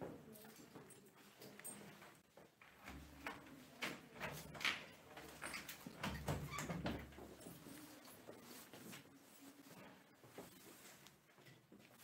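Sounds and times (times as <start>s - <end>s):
light knocks and shuffling: 0.0s - 12.0s.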